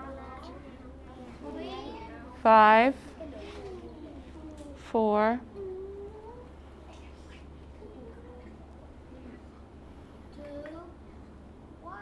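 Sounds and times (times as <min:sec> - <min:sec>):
young children's voices: 0:00.0 - 0:02.4, 0:03.2 - 0:04.8, 0:05.5 - 0:09.6, 0:10.3 - 0:11.0, 0:11.8 - 0:12.0
steady low hum: 0:00.0 - 0:12.0.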